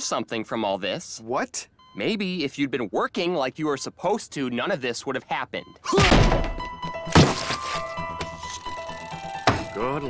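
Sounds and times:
background music with held notes: 6.2 - 10.0.

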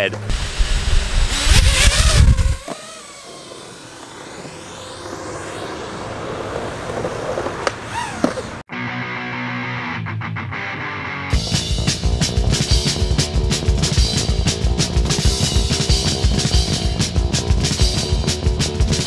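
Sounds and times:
wind buffeting microphone: 0.3 - 2.7
faint sliding whines: 0.4 - 8.6.

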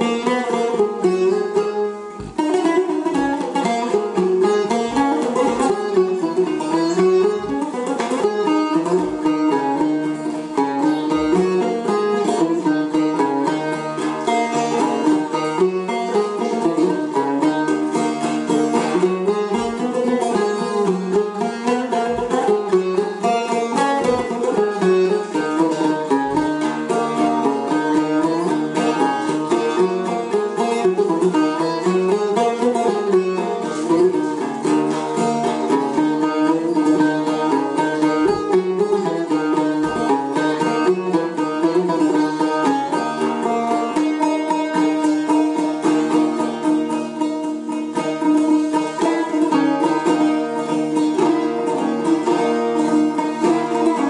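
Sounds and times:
plucked lute improvisation: 0.0 - 54.0.

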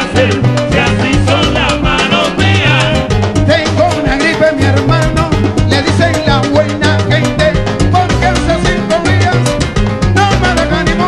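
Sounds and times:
dense percussion: 0.0 - 11.0
latin band playing: 0.0 - 11.0
stepping bass line: 0.0 - 11.0.

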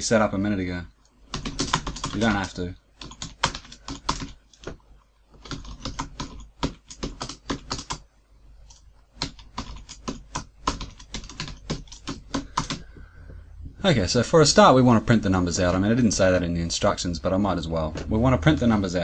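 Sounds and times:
computer keyboard typing: 1.3 - 4.8, 5.4 - 13.0.

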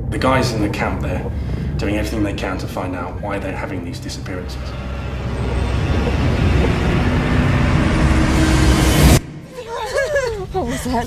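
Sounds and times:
low droning tone: 0.0 - 9.8
dense rumble and noise haze: 0.0 - 11.0.

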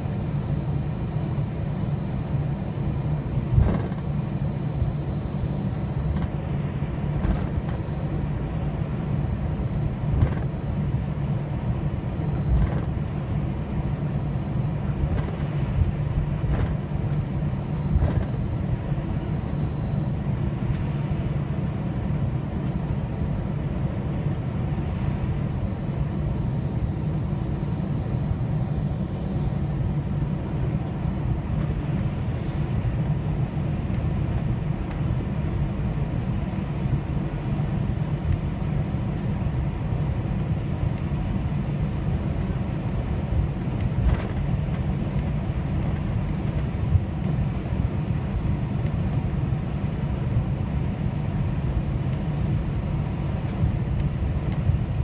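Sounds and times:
jet engines idling in cabin: 0.0 - 55.0.

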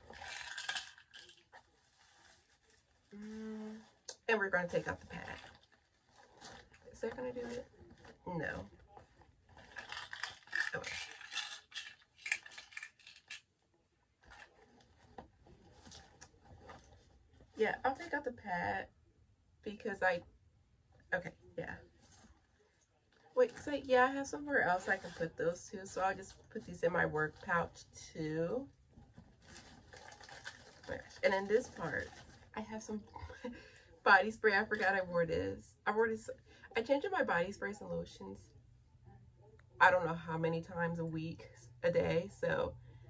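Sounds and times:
fabric rustling: 0.0 - 10.6
items rustling in a purse: 0.0 - 13.4, 14.2 - 18.3, 21.7 - 33.9.

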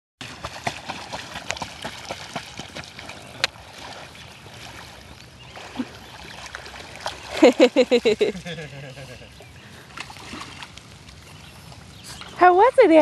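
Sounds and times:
sharp splash: 0.2 - 8.1, 9.9 - 11.2
water splashing and dripping: 0.2 - 8.4, 9.3 - 13.0
water lapping: 0.2 - 13.0.

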